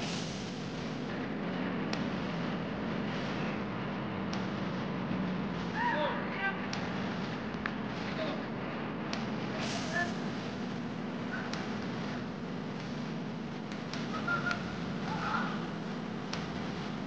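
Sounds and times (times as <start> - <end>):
steady background hiss: 0.0 - 17.0
player shouting: 14.3 - 15.6.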